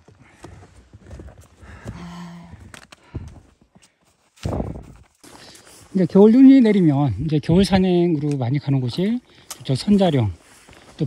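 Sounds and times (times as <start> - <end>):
footsteps crunching in snow: 3.3 - 7.2, 8.9 - 11.0.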